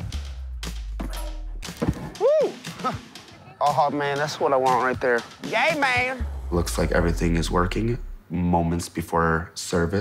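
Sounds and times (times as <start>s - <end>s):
background music with bass note: 0.0s - 8.2s.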